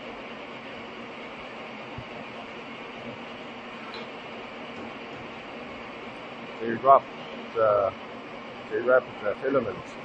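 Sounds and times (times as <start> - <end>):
machinery running: 0.0 - 10.0.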